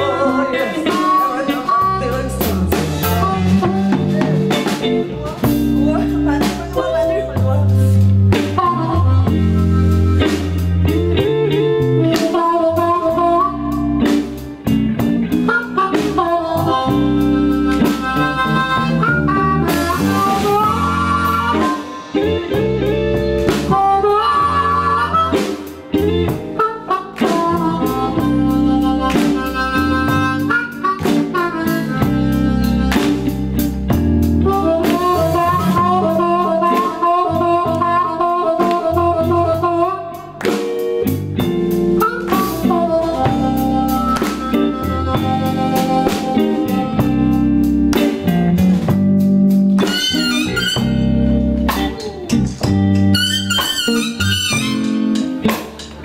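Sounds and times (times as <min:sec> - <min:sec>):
amplified harmonica solo: 0:00.0 - 0:55.6
bass guitar: 0:00.0 - 0:56.0
blues band playing: 0:00.0 - 0:56.0.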